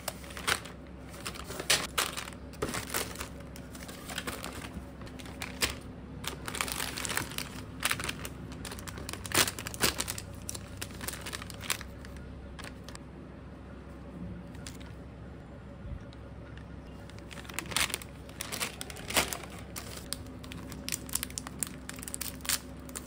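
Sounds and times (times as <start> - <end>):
packaging crinkling: 0.0 - 13.0, 17.0 - 23.0.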